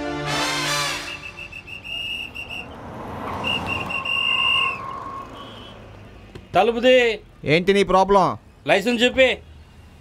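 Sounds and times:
police whistle blasts: 0.8s - 5.8s.

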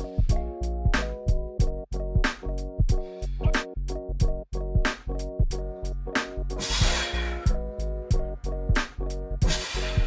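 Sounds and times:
background music with drum beat: 0.0s - 10.0s.

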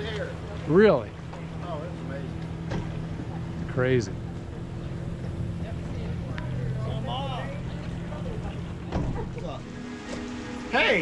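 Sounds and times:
faint voices: 0.0s - 9.8s
outboard motor idling: 0.0s - 11.0s.

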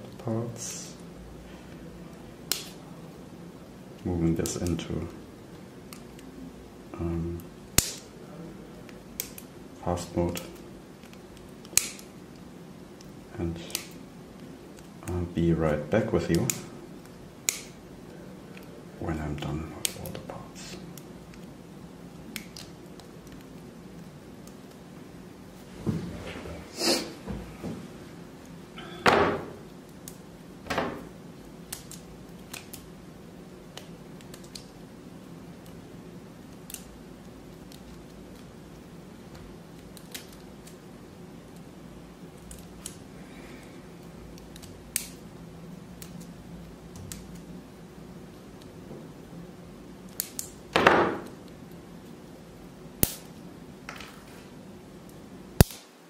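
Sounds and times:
faint low hum: 0.0s - 55.7s.

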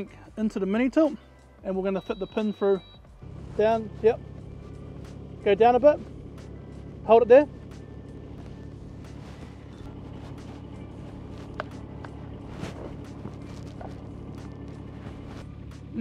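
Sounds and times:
diesel engine idling: 0.0s - 16.0s.

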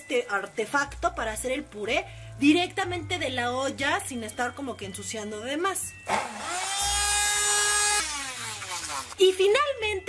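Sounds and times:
immersion blender motor whine: 6.1s - 9.2s.

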